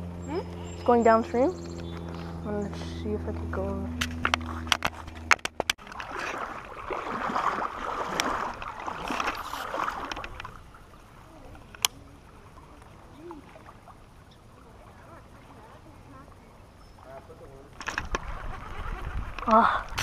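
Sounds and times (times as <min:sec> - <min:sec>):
creek water sloshing and gurgling: 0:01.6 - 0:20.0
sharp clicks and knocks: 0:04.0 - 0:05.8.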